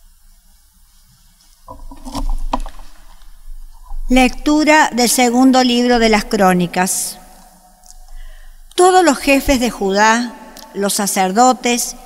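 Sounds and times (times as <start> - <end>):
microphone handling rustling: 1.6 - 4.4.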